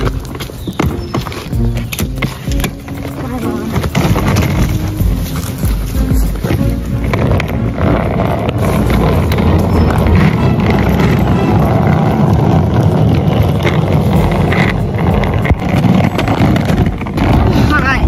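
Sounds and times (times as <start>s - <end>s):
suitcase wheels rattling on asphalt: 0.0s - 18.0s.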